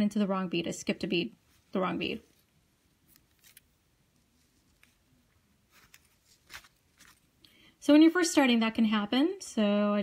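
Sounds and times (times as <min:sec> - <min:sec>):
beading needle clicks and rustles: 0:01.5 - 0:07.5.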